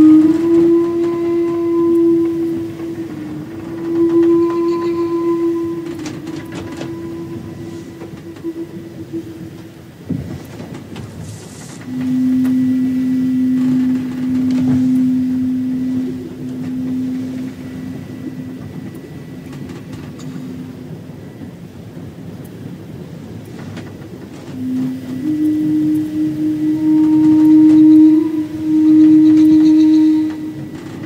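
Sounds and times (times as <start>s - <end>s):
low flute long notes: 0.0s - 11.0s, 11.7s - 23.1s, 24.3s - 31.0s.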